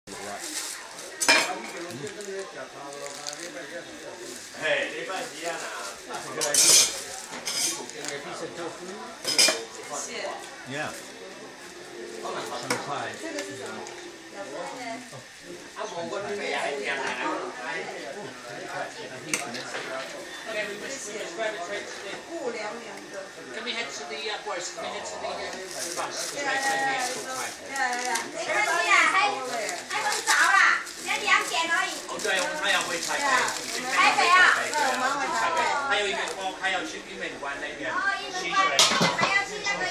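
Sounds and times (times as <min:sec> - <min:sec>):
metal kitchenware clattering: 0:06.4 - 0:07.8, 0:09.2 - 0:09.6, 0:38.7 - 0:39.5
children talking: 0:26.2 - 0:36.9, 0:37.8 - 0:39.9.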